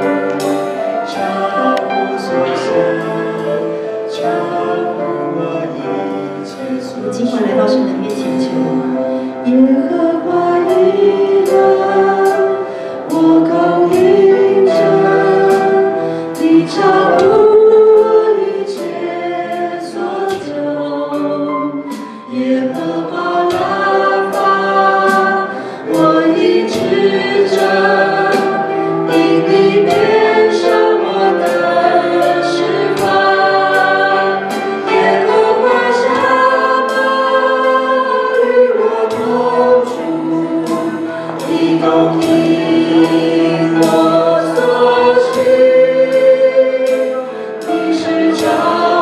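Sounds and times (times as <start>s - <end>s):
drum or cymbal hits: 0.0s - 49.0s
group singing a praise song: 0.0s - 49.0s
keyboard accompaniment: 0.0s - 49.0s.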